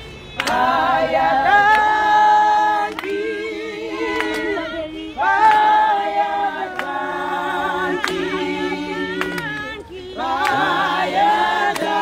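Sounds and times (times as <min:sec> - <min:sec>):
women singing in harmony: 0:00.4 - 0:12.0.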